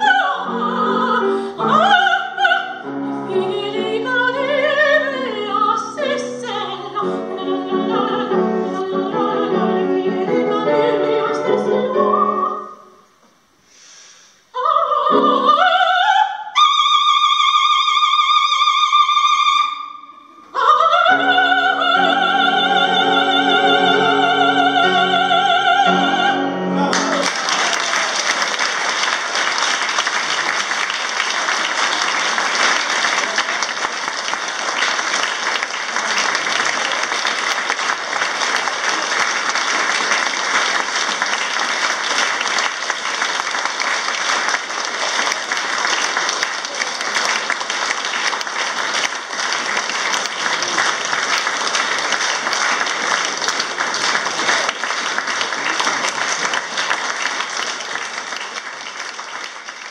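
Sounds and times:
audience applauding: 26.8 - 59.9.

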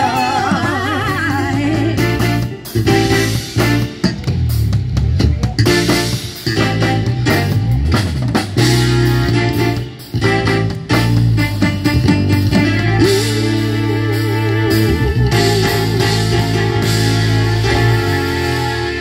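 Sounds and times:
drum kit: 0.0 - 19.0
guitar: 0.0 - 19.0
live band playing: 0.0 - 19.0.

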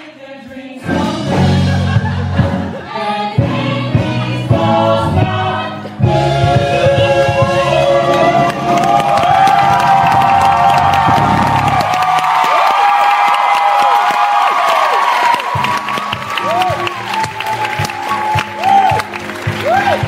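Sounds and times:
cast singing with band: 2.7 - 9.3
audience cheering and applauding: 7.5 - 20.0.

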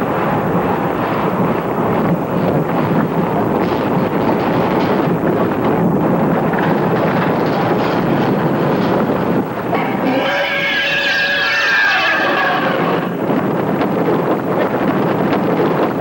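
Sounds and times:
roller coaster rumbling on track: 0.0 - 16.0
rush of wind: 0.0 - 16.0.

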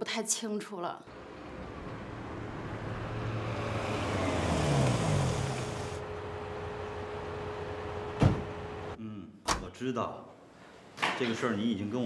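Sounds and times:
car driving up and stopping: 1.1 - 9.0.

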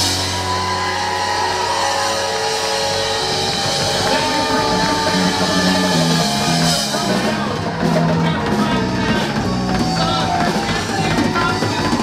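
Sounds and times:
bass line: 0.0 - 12.0
funk band playing: 0.0 - 12.0.

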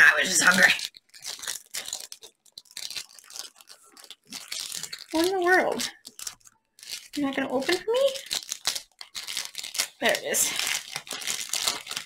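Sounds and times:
plastic sleeve crinkling: 0.0 - 12.0.

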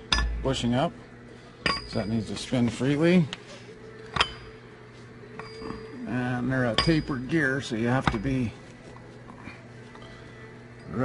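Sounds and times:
faint handling sounds: 7.7 - 11.0.

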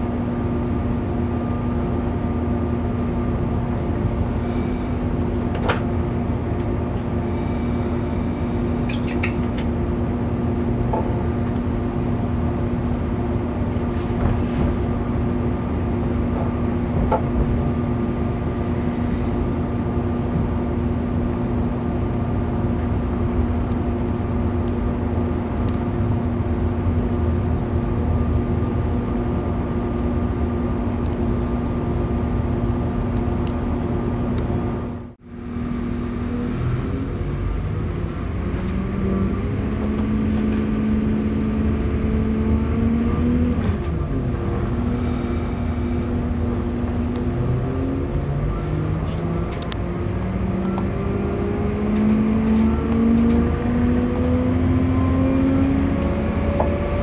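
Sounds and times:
train diesel engine drone: 0.0 - 57.0.

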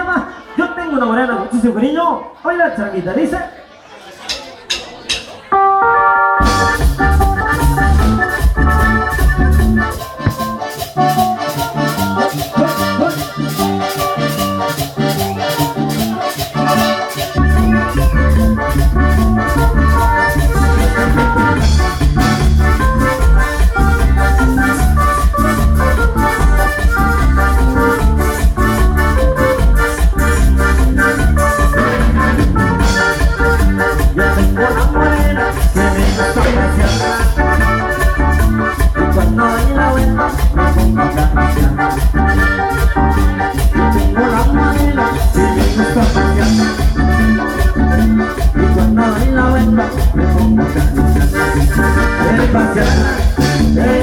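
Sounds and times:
accordion: 0.0 - 2.5, 5.4 - 54.0
live band playing dance tune: 0.0 - 54.0
drums steady beat: 6.4 - 54.0.

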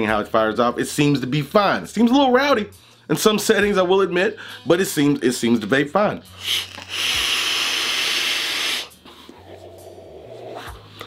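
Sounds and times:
vape hissing air draw: 6.3 - 9.0.

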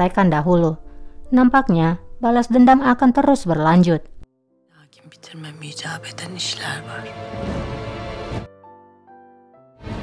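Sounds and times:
quiet sustained background music: 0.0 - 10.0
woman speaking softly: 4.8 - 7.1.

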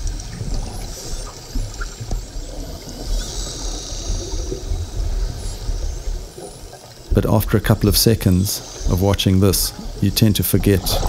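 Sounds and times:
low underwater rumble: 0.0 - 11.0
underwater rushing bubbling water: 0.0 - 11.0.

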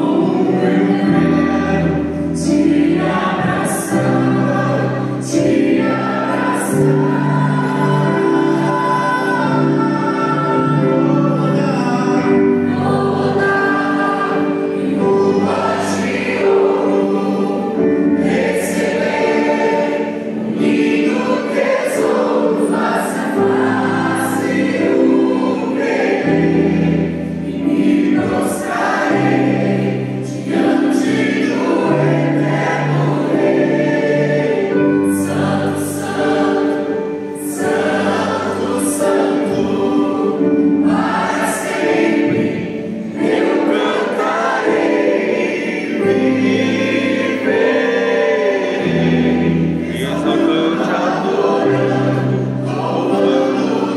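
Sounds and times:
church choir singing a hymn: 0.0 - 53.9
electric keyboard accompaniment: 0.0 - 53.9.

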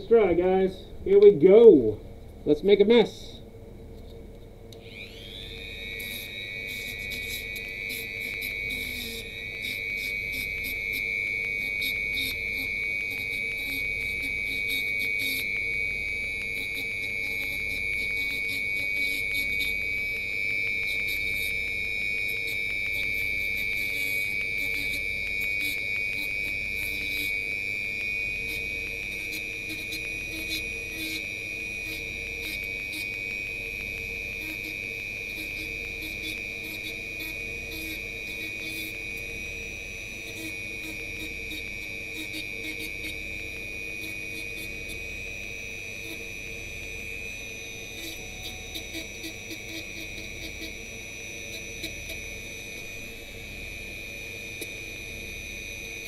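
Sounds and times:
rotary tool motor whine: 4.7 - 56.0.

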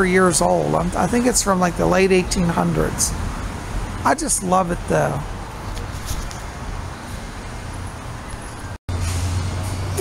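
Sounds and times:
traffic noise hiss: 0.0 - 10.0.

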